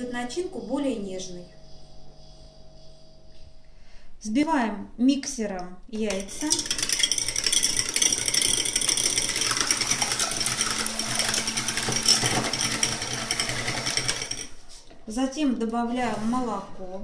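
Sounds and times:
beaters whisking eggs in metal pot: 6.0s - 14.6s
electric hand mixer whine: 6.4s - 14.6s.

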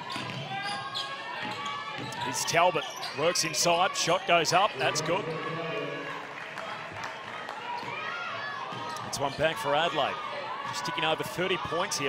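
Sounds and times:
crowd murmur: 4.8s - 6.9s.

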